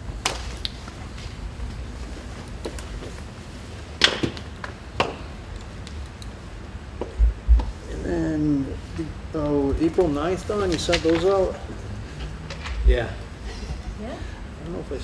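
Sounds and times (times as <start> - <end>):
low thumps: 7.2 - 7.8.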